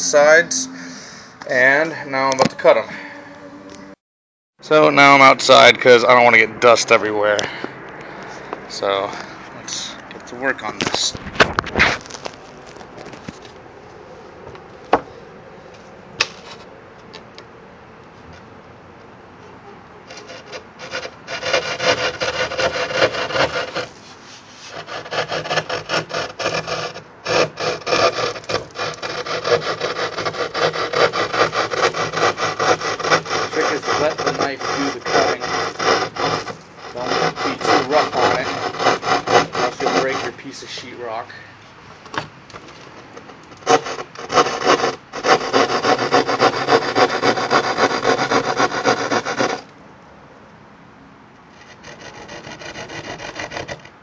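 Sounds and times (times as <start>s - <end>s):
saw rasping through drywall: 20.1s - 41.1s, 43.2s - 49.7s, 51.5s - 54.0s.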